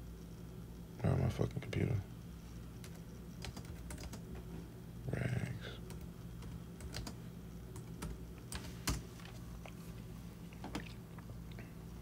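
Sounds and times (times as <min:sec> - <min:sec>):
low steady hum: 0:00.0 - 0:12.0
keystrokes on computer keyboard: 0:02.8 - 0:04.4, 0:05.9 - 0:09.0.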